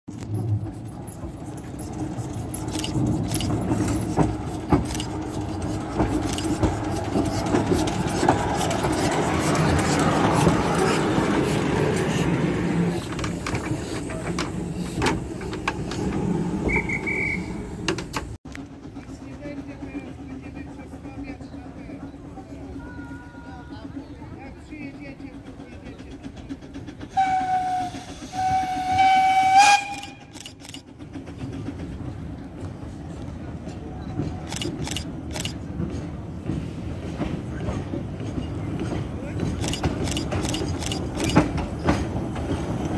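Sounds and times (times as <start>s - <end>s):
steam locomotive passing: 0.1s - 42.9s
high squeal: 16.4s - 17.7s.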